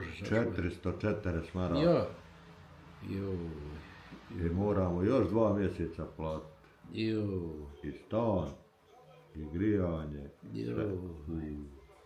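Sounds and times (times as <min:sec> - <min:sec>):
man talking: 0:00.0 - 0:02.2, 0:03.0 - 0:12.0.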